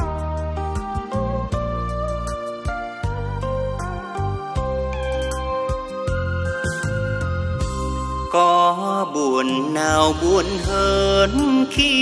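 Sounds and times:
band accompaniment: 0.0s - 8.5s
man singing: 8.3s - 12.0s.

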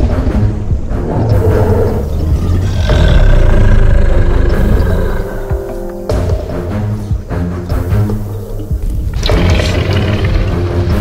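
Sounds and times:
loud deep roar: 1.0s - 5.6s, 9.2s - 11.0s.

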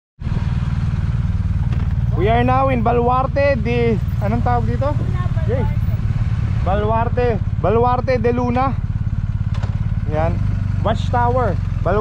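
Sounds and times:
motorcycle engine idling: 0.3s - 12.0s.

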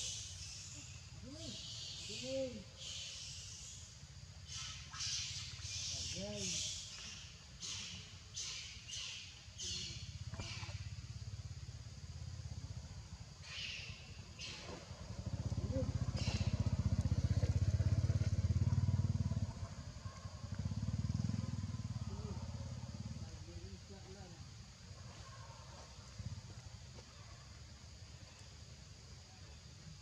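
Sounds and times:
engine rumble: 0.1s - 30.0s.

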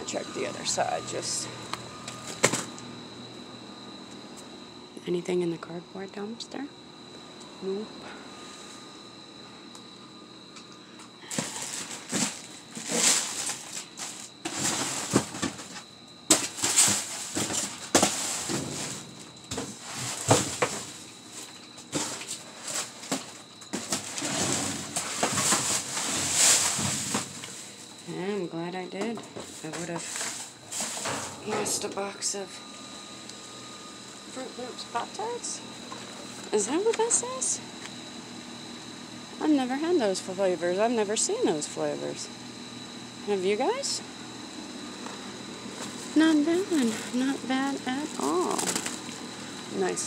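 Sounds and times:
cardboard boxes being shifted: 11.3s - 15.6s, 21.9s - 27.4s.

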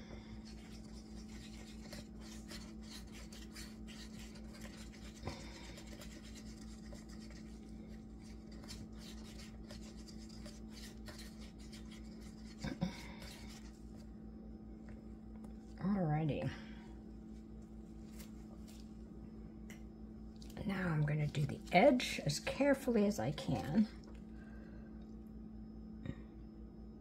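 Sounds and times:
steady low hum: 0.0s - 27.0s
stick scraping mixing cup: 0.4s - 13.8s.

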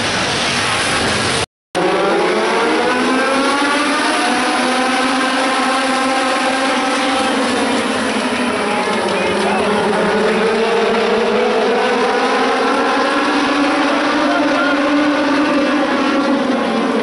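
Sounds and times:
race car engines revving: 0.0s - 17.0s.

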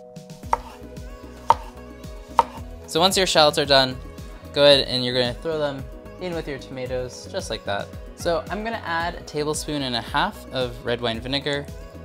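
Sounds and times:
knife slicing shallot: 0.4s - 2.6s
knife knocking on cutting board: 0.5s - 0.8s, 1.5s - 1.7s, 2.3s - 2.6s.

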